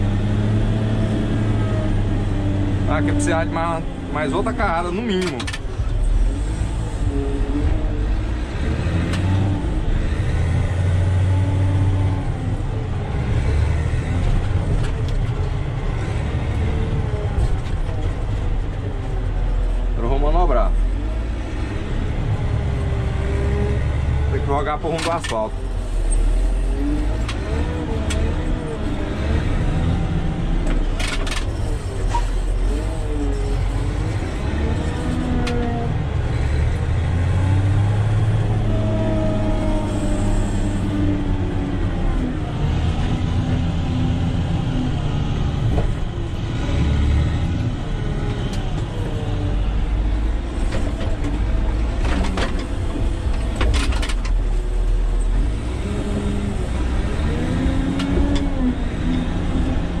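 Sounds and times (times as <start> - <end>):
diesel engine running: 0.0 - 60.0.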